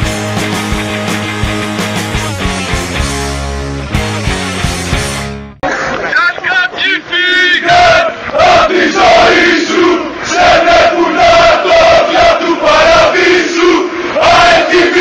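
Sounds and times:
football crowd chanting: 0:06.7 - 0:15.0.

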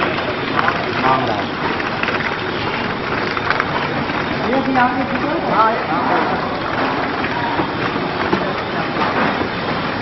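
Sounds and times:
packing machine clattering: 0:00.0 - 0:10.0.

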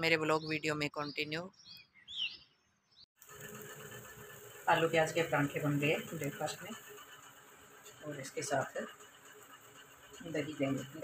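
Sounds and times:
small bird chirping: 0:00.0 - 0:03.1.

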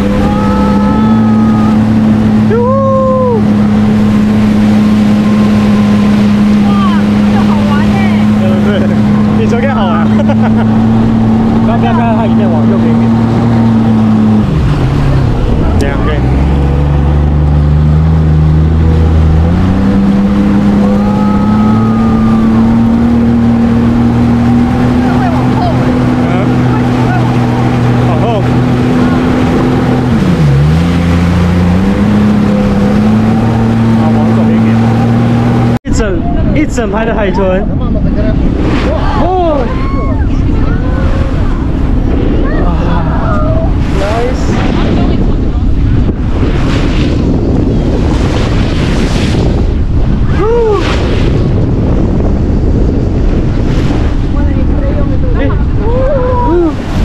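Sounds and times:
jet ski engine running: 0:00.0 - 0:57.0.

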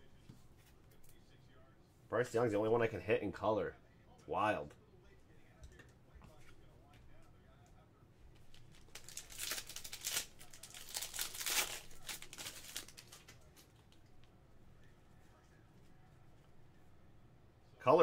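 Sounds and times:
foil wrapper crinkling and tearing: 0:08.5 - 0:13.6.

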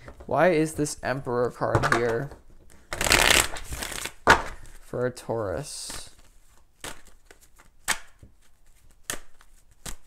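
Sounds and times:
cards being shuffled: 0:01.9 - 0:04.8, 0:05.8 - 0:10.0.

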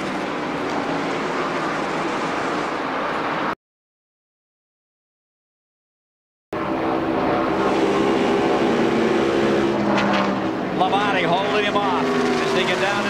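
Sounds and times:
race car engine drone: 0:00.0 - 0:03.6, 0:06.6 - 0:13.0
man speaking: 0:10.8 - 0:13.0.

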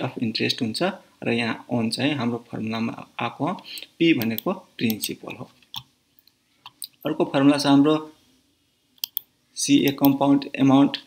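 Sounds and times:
person speaking: 0:00.0 - 0:05.9, 0:06.7 - 0:08.2, 0:09.0 - 0:11.0.

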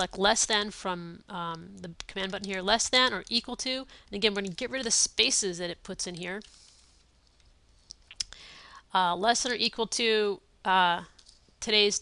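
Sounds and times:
person speaking: 0:00.0 - 0:06.7, 0:09.0 - 0:12.0
keyboard and mouse clicks: 0:01.8 - 0:03.5.

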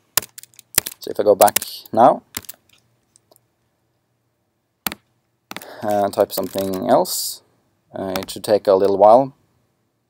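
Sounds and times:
man speaking: 0:01.0 - 0:02.3, 0:05.6 - 0:09.4.

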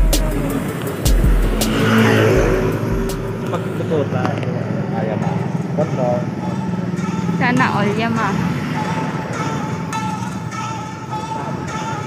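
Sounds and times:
road traffic: 0:00.0 - 0:12.0
vehicle passing: 0:00.0 - 0:12.0.

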